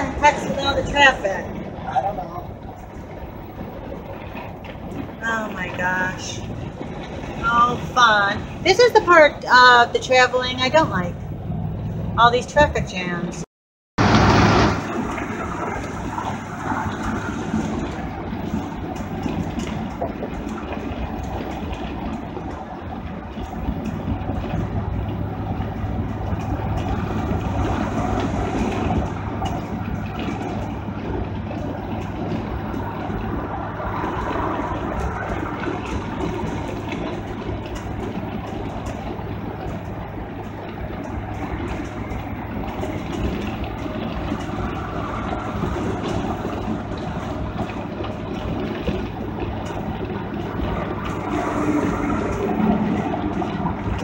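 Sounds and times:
engine and road noise: 0.0s - 54.0s.

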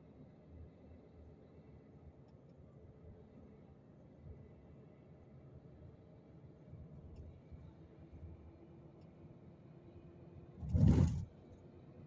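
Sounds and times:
car road rumble: 10.5s - 11.6s.

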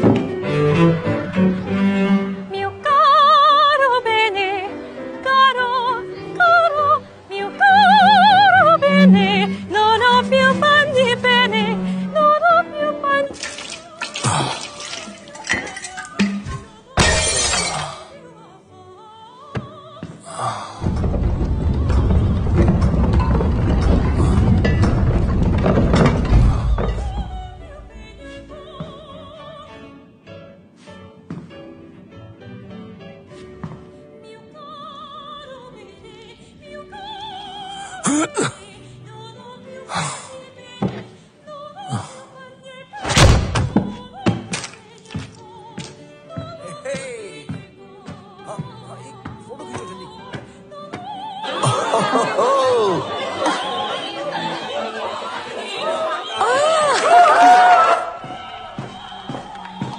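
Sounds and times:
film score music: 0.0s - 17.0s, 19.6s - 42.2s
operatic singing: 0.0s - 30.1s, 34.2s - 59.9s
glass jar smashing: 13.4s - 18.0s
heavy thuds and knocks: 20.8s - 29.1s.

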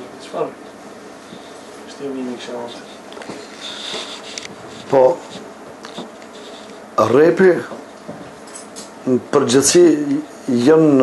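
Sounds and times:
low room noise: 0.0s - 11.0s
man speaking: 7.0s - 7.8s.

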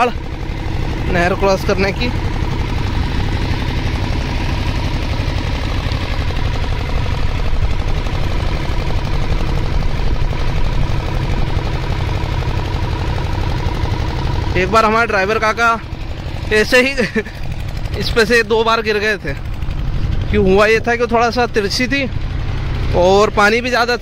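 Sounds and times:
engine running steadily: 0.0s - 24.0s.

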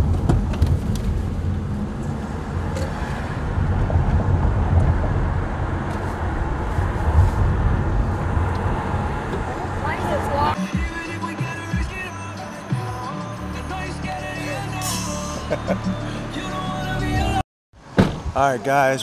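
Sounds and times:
car tyres and engine rumble: 0.0s - 10.6s.

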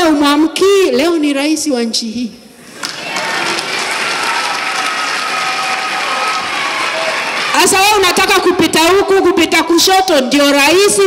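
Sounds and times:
audience applauding: 2.7s - 8.4s
long held cheer: 2.7s - 8.4s.

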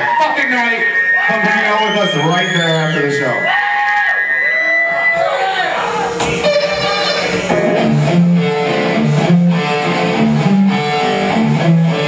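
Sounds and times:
sustained guitar notes: 0.0s - 3.5s, 4.1s - 12.0s
live rock band: 0.0s - 12.0s.

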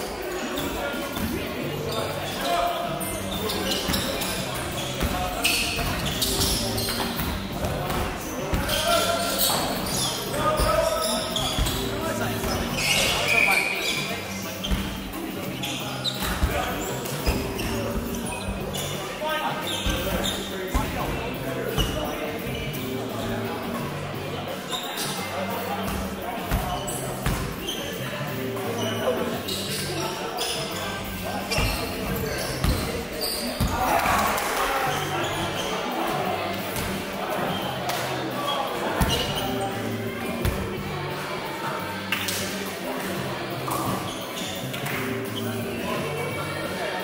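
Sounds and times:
players calling out: 1.7s - 22.0s.

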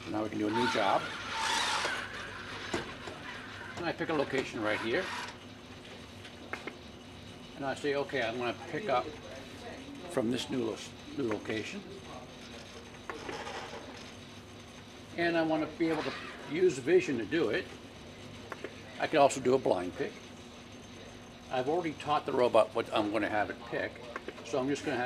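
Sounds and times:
faint mechanical noise: 0.0s - 25.0s
robot arm rustling whir: 0.5s - 5.4s.

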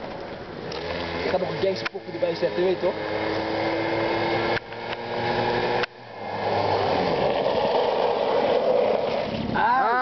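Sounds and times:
quad bike engine running: 0.6s - 9.8s.

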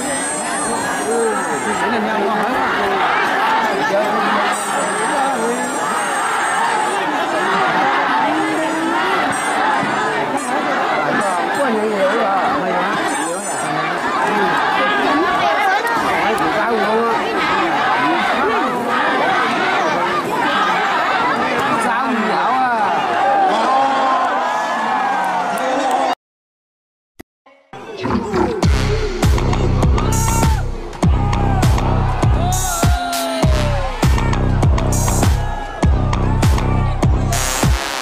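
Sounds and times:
crowd chattering and calling out: 0.0s - 26.2s, 27.8s - 38.0s.

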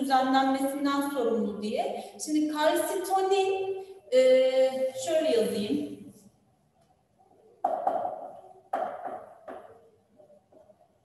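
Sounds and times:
marker pen on whiteboard: 6.1s - 11.0s.

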